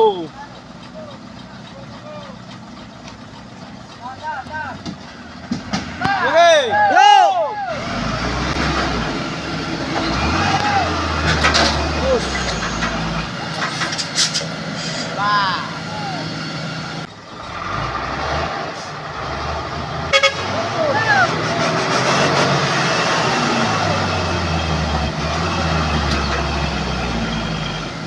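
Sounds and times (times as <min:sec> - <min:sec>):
diesel truck engines labouring: 0:00.0 - 0:28.0
men shouting: 0:06.0 - 0:08.1, 0:10.1 - 0:11.3, 0:15.1 - 0:16.4, 0:20.4 - 0:21.5.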